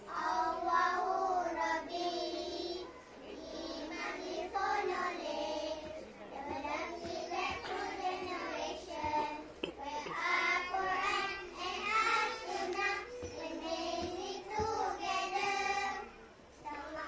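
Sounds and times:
children reciting in unison: 0.0 - 17.0.

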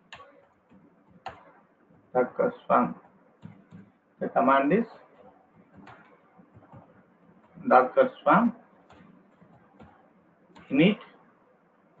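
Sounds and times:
computer keyboard keystrokes: 5.6 - 7.6.

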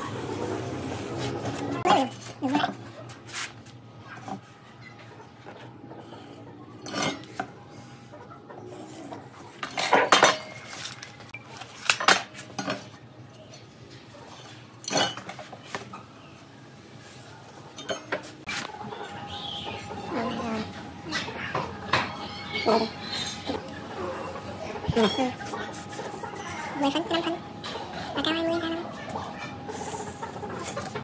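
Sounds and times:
metal tools clinking on wood: 9.6 - 11.3.

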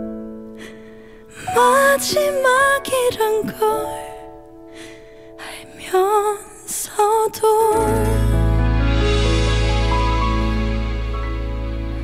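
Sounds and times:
woman singing ballad: 1.3 - 4.4, 5.4 - 8.8.

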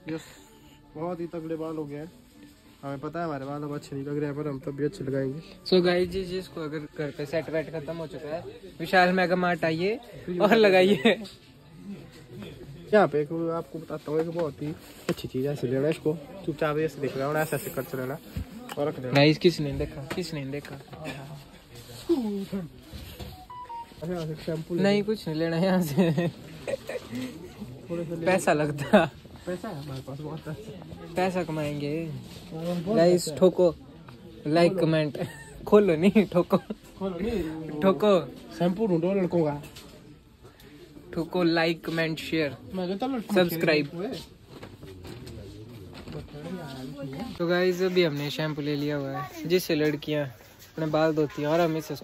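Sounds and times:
two-tone electronic beep: 23.4 - 24.0.

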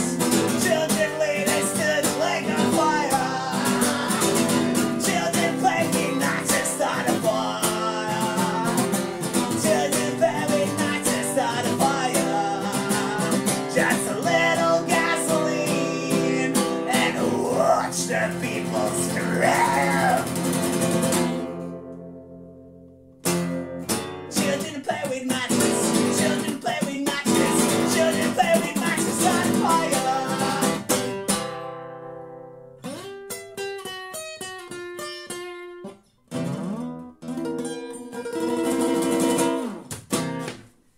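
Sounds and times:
acoustic guitar playing: 0.0 - 40.9.

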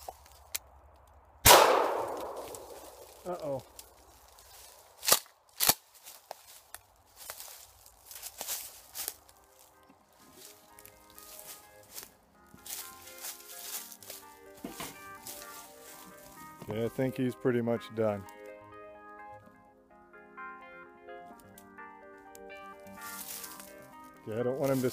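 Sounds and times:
background music: 8.0 - 24.9.

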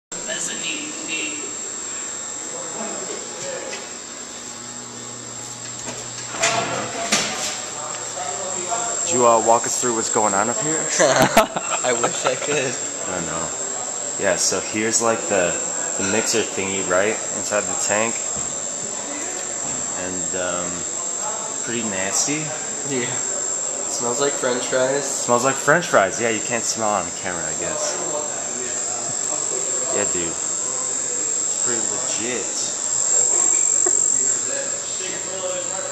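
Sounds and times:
industrial machinery whine: 0.2 - 35.9
person laughing: 10.9 - 12.8, 33.3 - 34.4.

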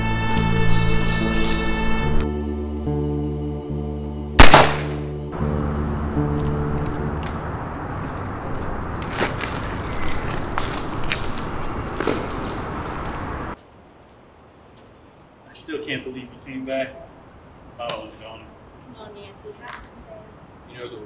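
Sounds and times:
music score: 0.0 - 7.8
revolver gunshot: 4.4 - 5.1.

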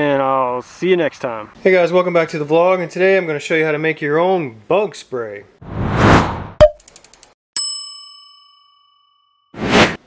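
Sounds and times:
whoosh: 5.6 - 6.6
quick run of clicks: 6.7 - 7.4
bright bell-like ding: 7.6 - 9.5.

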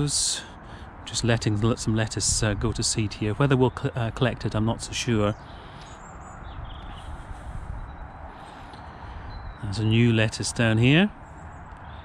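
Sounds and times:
faint bird chirps: 5.2 - 10.4.

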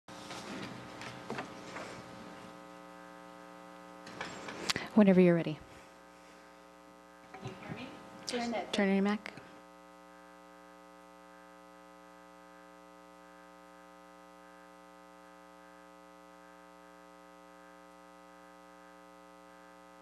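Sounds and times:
faint electrical mains hum: 0.1 - 20.0.

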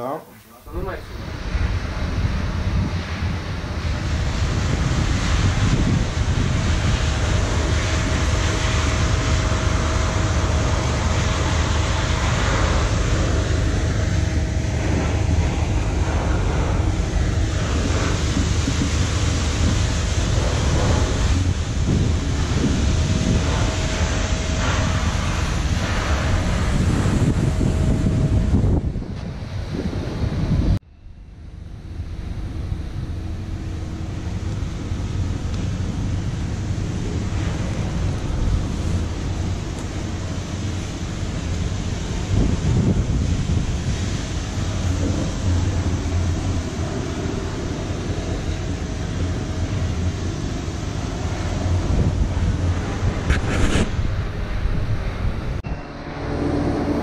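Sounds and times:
faint hum: 0.0 - 57.0
wind buffeting microphone: 0.7 - 30.8, 32.3 - 55.6.

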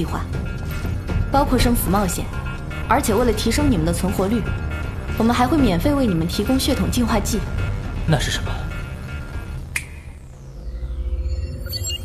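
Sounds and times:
low rumbling music: 0.0 - 12.0
sharp electronic click: 9.7 - 10.2.

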